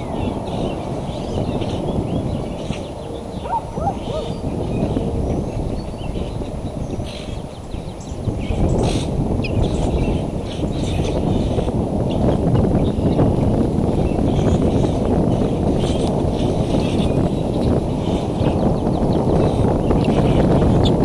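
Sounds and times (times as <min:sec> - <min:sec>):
rumbling wind noise: 0:00.0 - 0:21.0.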